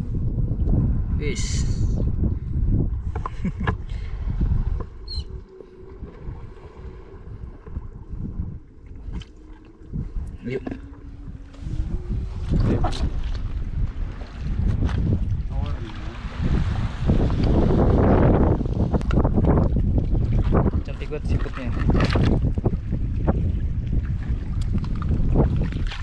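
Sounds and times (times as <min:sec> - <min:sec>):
wind rumbling on microphone: 0:00.0 - 0:26.0
footsteps on rock and shallow water: 0:24.4 - 0:26.0.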